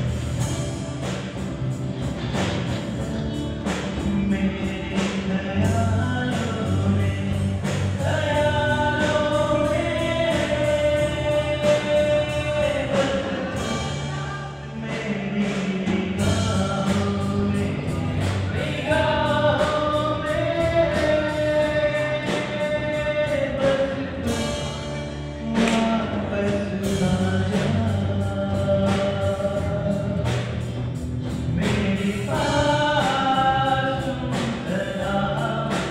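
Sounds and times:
acoustic guitar: 0:00.0 - 0:35.9
drum and cymbal hits: 0:00.0 - 0:35.9
electric guitar: 0:00.0 - 0:35.9
keyboard: 0:00.0 - 0:35.9
live band playing: 0:00.0 - 0:35.9
man singing: 0:03.0 - 0:35.9.

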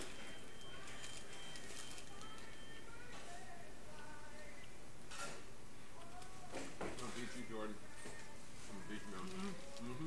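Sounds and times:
paper bags and wrappers rustling: 0:00.0 - 0:03.4, 0:06.1 - 0:10.0
restaurant room noise: 0:00.0 - 0:10.0.

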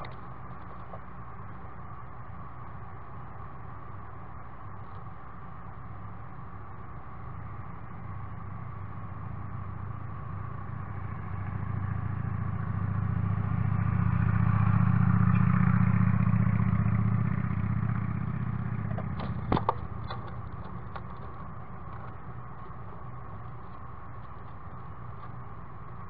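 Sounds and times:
vehicle engine passing by: 0:08.0 - 0:25.4.

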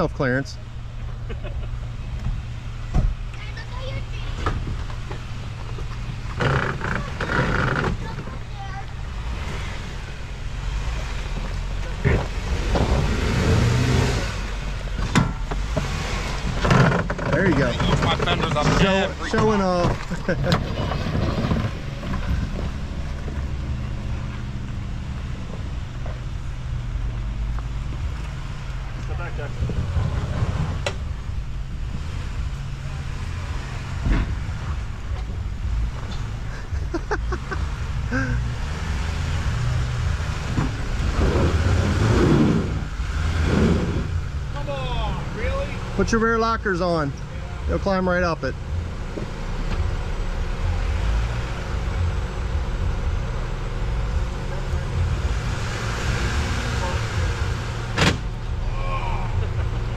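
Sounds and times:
voices calling out: 0:00.0 - 0:24.9, 0:40.7 - 0:59.9
off-road vehicle engines rumbling: 0:00.0 - 0:59.9.

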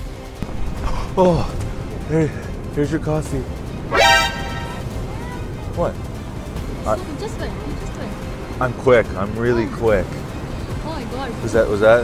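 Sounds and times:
background music: 0:00.0 - 0:12.0
loud horn-like blast: 0:03.9 - 0:05.0.

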